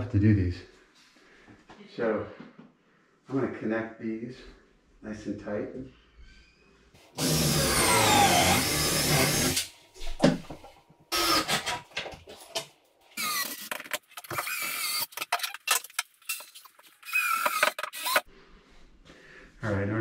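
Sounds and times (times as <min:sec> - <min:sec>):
cordless drill driving screws: 0:07.2 - 0:09.7, 0:11.1 - 0:11.7, 0:13.2 - 0:15.2, 0:17.0 - 0:18.3.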